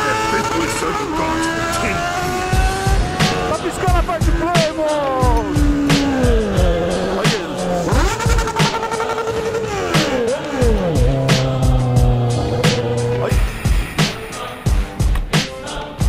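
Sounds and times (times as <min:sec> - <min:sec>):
motorcycle engine: 0:00.0 - 0:15.2
music with steady beat: 0:02.1 - 0:16.0.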